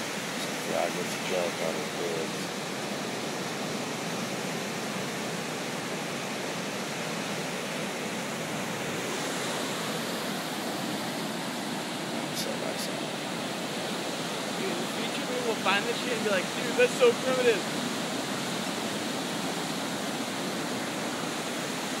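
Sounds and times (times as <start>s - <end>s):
ocean surf breaking: 0.0s - 22.0s.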